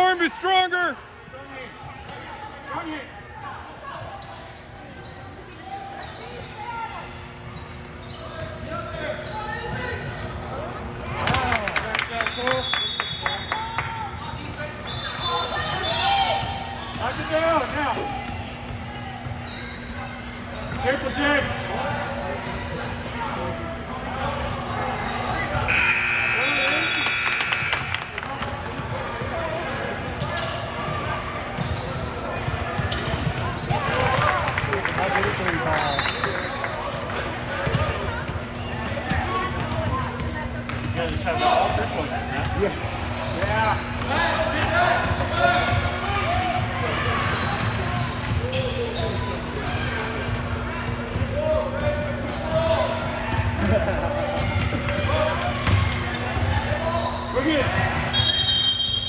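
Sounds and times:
voices echoing in a gym: 0.0s - 59.0s
buzzing tone: 25.7s - 28.0s.

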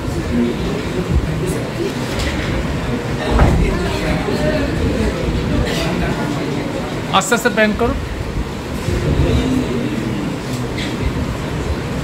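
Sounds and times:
indistinct voices: 0.0s - 7.7s
low rumble of room noise: 0.0s - 12.0s.

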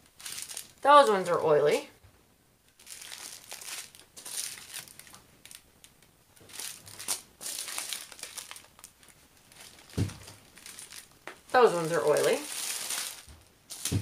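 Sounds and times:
plastic bags crinkling: 0.0s - 0.8s, 2.7s - 14.0s
soft thump: 10.0s - 10.2s.

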